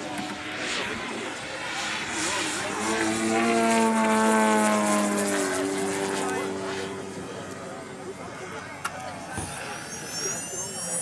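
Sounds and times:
model plane engine fly-by: 0.0 - 11.0.

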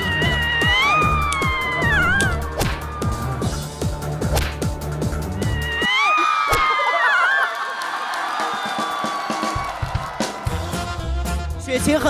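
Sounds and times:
electronic music with fast beat: 0.0 - 5.8.

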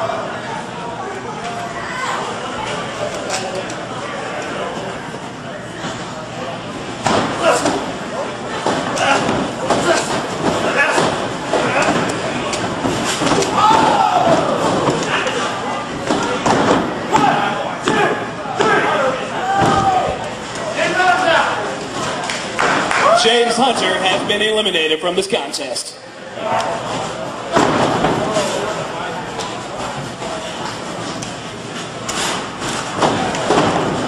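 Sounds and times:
bodies slamming on ring canvas: 8.6 - 15.0, 27.5 - 28.7, 32.1 - 34.0
crowd shouting: 13.4 - 15.6, 17.0 - 21.6.

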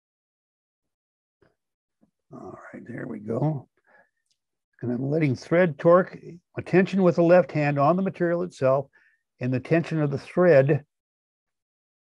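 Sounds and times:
man's drawn-out voice: 2.3 - 3.6.

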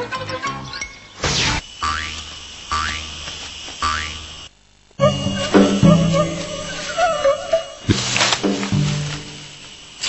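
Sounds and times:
background music: 0.0 - 1.1.

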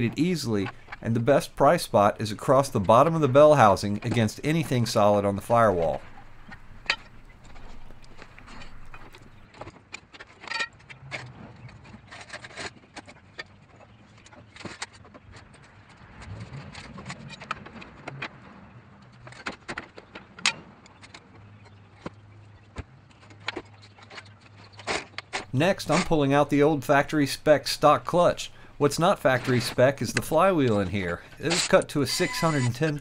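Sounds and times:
low steady hum: 0.0 - 9.5, 25.4 - 33.0.

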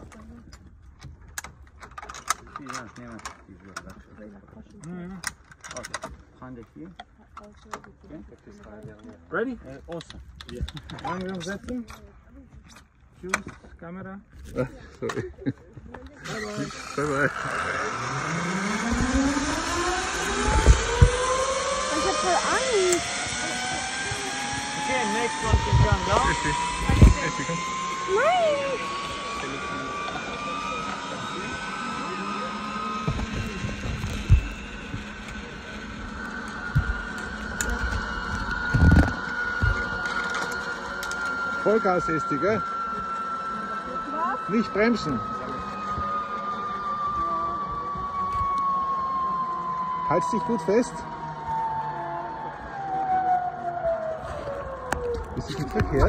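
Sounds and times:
zipline pulleys whining on cable: 0.0 - 13.6, 14.4 - 56.0.

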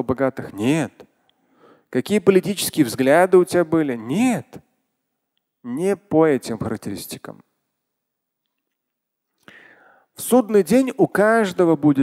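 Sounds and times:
man breathing in: 1.4 - 1.9, 9.4 - 10.1.

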